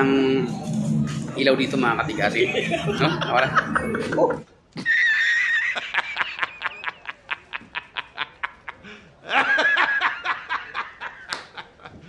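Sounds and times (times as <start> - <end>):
high-pitched squeal: 0.0 - 4.0
man laughing hard: 2.4 - 12.0.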